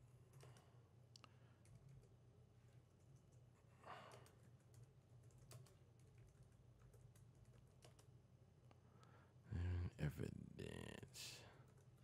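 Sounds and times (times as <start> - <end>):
computer keyboard typing: 1.6 - 2.2, 4.1 - 8.1.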